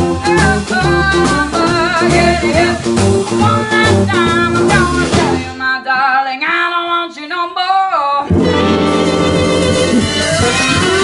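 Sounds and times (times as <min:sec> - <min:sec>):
live blues band playing: 0:00.0 - 0:05.6, 0:08.2 - 0:11.0
woman singing: 0:00.0 - 0:08.6.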